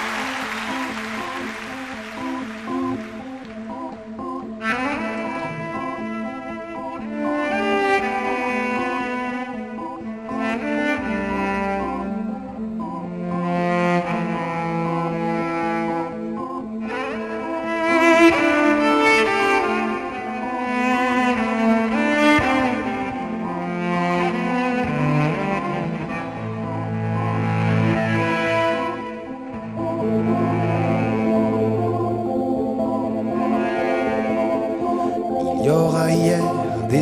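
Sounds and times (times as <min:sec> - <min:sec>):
bowed electric cello: 0:00.0 - 0:37.0.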